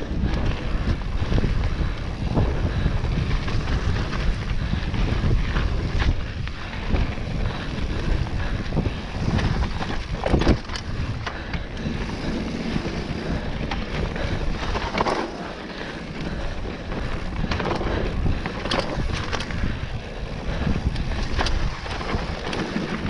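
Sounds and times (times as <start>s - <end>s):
tyres on dirt: 0.0s - 23.0s
wind on microphone: 0.0s - 23.0s
bike knocks and clatters: 9.2s - 15.4s.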